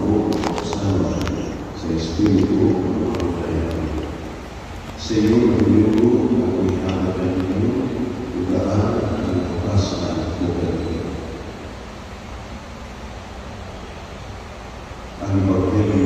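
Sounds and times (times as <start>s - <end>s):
man speaking in echoing church: 0.0s - 11.7s, 15.2s - 16.0s.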